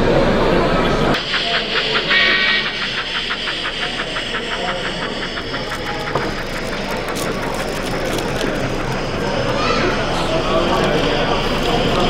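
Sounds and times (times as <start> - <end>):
exhibition hall background noise: 0.0 - 12.0
model train motor hum: 1.1 - 12.0
wheels clicking on track: 1.2 - 12.0.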